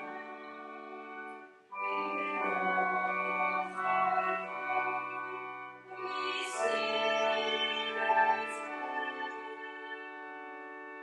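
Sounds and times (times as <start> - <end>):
church organ playing hymn: 0.0 - 11.0.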